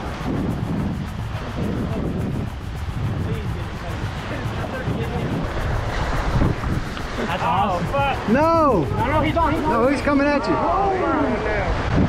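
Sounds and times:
surf breaking on rocks: 0.0s - 12.0s
wind buffeting microphone: 0.0s - 12.0s.

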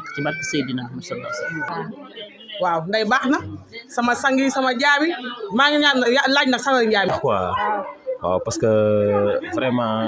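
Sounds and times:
woman talking: 0.0s - 7.1s.

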